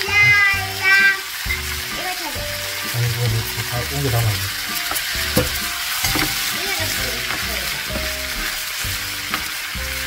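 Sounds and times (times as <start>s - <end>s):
background music: 0.0s - 10.0s
food sizzling in a frying pan: 0.0s - 10.0s.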